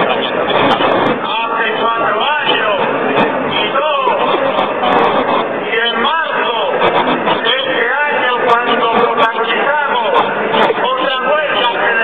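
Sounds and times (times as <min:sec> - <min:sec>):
large outdoor crowd noise: 0:00.0 - 0:12.0
speech over public address system: 0:00.0 - 0:12.0.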